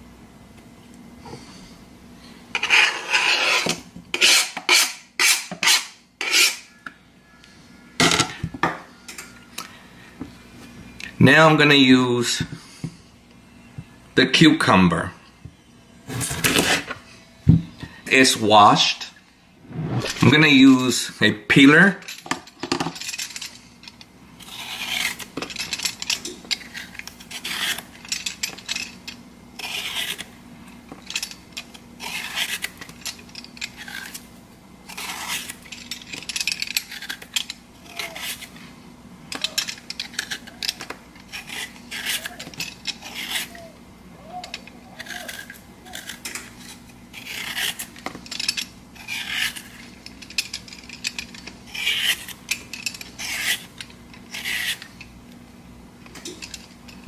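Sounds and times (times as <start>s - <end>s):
peeler scraping cucumber skin: 2.6s - 6.7s, 24.4s - 25.3s, 26.6s - 27.9s, 29.6s - 30.3s, 32.0s - 32.8s, 34.9s - 35.6s, 36.8s - 38.5s, 41.3s - 43.6s, 44.9s - 48.0s, 49.0s - 49.8s, 51.7s - 52.4s, 53.2s - 54.9s.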